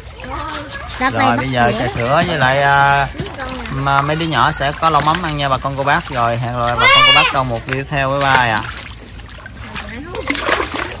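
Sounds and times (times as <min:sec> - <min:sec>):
fish splashing in a net: 0:00.0 - 0:11.0
voices talking: 0:00.0 - 0:11.0.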